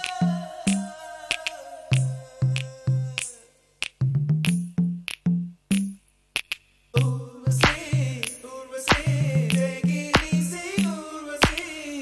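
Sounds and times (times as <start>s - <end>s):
background music with snapping beat: 0.0s - 12.0s.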